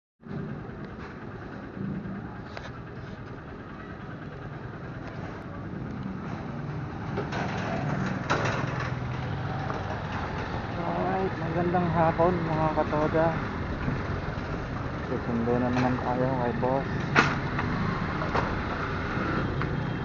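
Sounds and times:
small motorcycle engine: 0:16.4 - 0:20.0.

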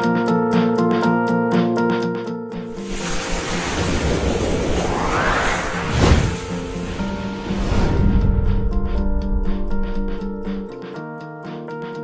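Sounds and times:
rising whoosh sound effect: 0:02.6 - 0:10.7.

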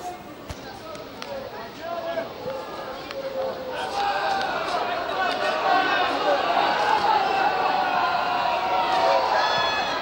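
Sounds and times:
footballers shouting: 0:02.0 - 0:10.0.

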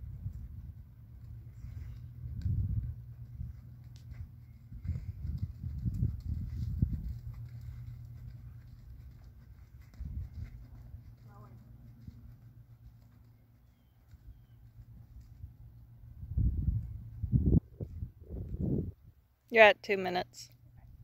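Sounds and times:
horse hoofbeats in soft sand: 0:00.0 - 0:18.0.

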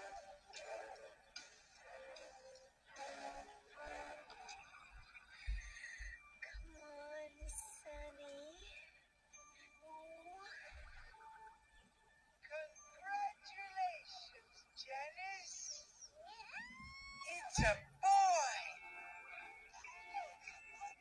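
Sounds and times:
soft background music: 0:00.0 - 0:21.0.

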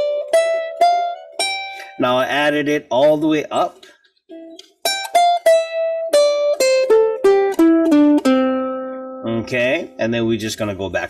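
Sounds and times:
ukulele plucked scale: 0:00.0 - 0:11.0.

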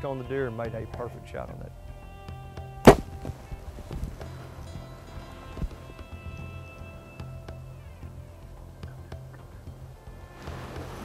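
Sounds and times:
background music: 0:00.0 - 0:11.0
bow string snap: 0:02.6 - 0:04.3.

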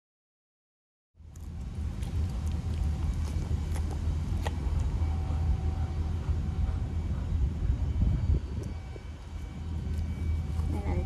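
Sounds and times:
steady low rumble: 0:01.2 - 0:11.0.

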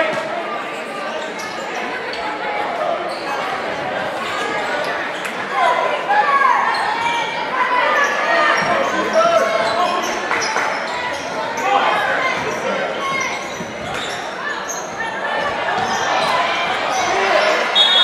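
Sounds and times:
voices shouting and talking: 0:00.0 - 0:18.0.

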